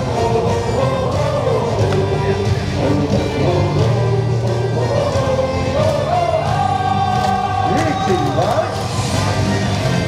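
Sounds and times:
chorus singing over loudspeakers: 0:00.0 - 0:10.0.

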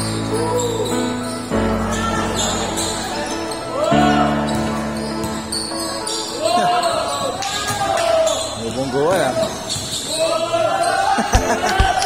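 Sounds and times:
players shouting: 0:00.1 - 0:12.0.

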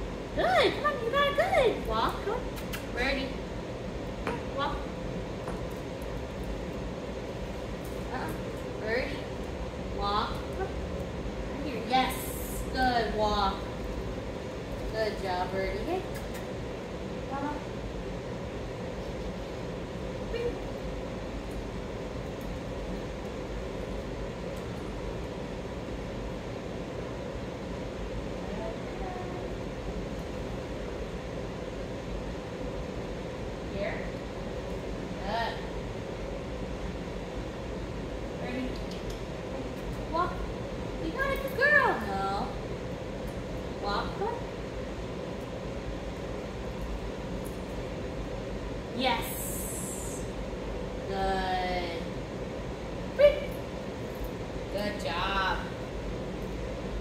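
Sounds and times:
steady background hum: 0:00.0 - 0:57.0.

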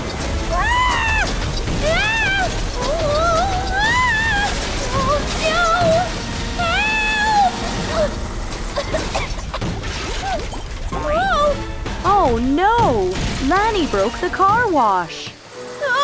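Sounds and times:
background music: 0:00.0 - 0:16.0.

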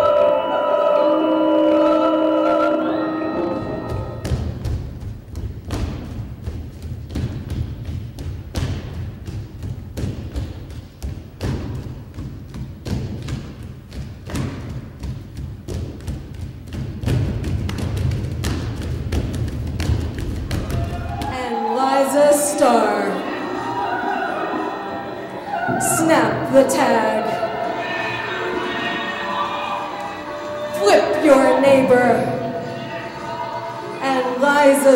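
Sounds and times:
held sung tones: 0:00.0 - 0:04.3, 0:21.3 - 0:34.9
low electronic drone: 0:00.0 - 0:04.6.

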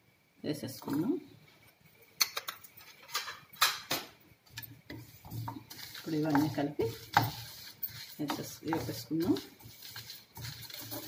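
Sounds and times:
spatula scraping frying pan: 0:04.5 - 0:11.0
person speaking: 0:05.8 - 0:07.2, 0:08.0 - 0:09.6.

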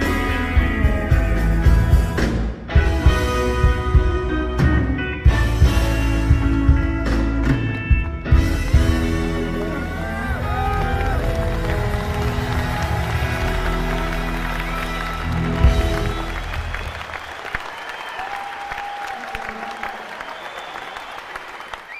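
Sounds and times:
live rock band: 0:00.0 - 0:17.8
audience applause: 0:08.4 - 0:21.9.

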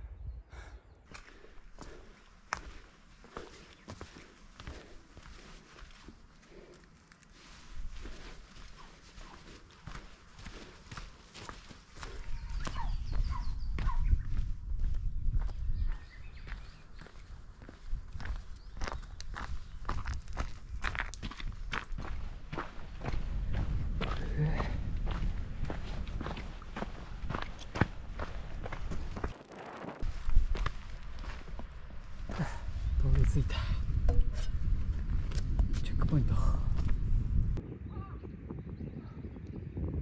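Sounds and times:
footsteps on a trail: 0:01.0 - 0:37.6
low rumble: 0:22.9 - 0:39.7.

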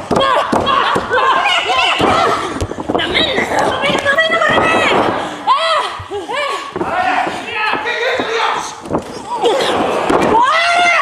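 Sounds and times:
arena crowd noise: 0:00.0 - 0:11.0
people shouting: 0:00.0 - 0:11.0.

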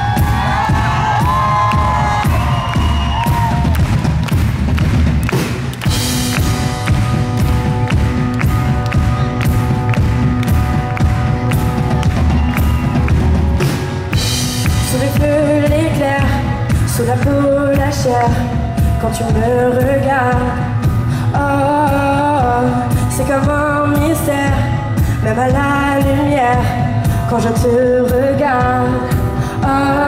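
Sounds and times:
crowd cheering: 0:00.0 - 0:15.2
live pop band playing: 0:00.0 - 0:30.0.

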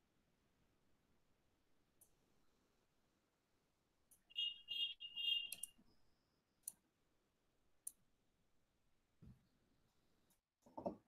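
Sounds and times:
computer mouse clicks: 0:05.5 - 0:05.8.

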